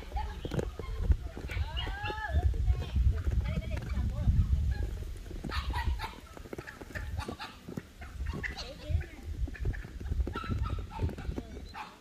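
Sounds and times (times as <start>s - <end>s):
faint farmyard animal sounds: 0.0s - 12.0s
wind rumbling on microphone: 0.0s - 12.0s.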